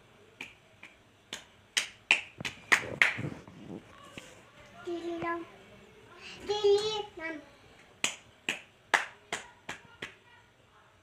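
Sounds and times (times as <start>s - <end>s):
girl clapping hands: 0.4s - 3.2s, 8.0s - 10.2s.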